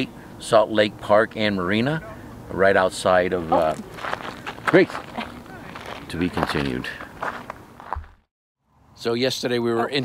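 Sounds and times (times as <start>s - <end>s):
footsteps crunching on gravel: 3.5s - 8.3s.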